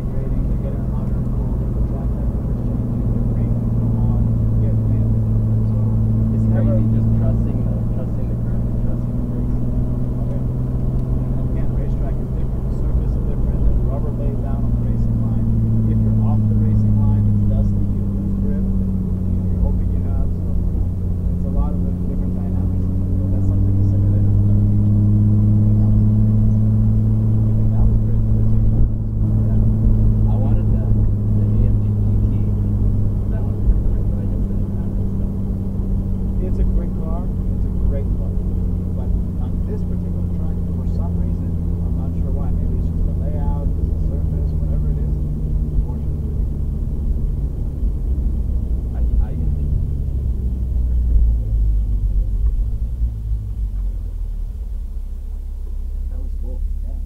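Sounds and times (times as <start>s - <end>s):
car engine droning: 0.0s - 57.0s.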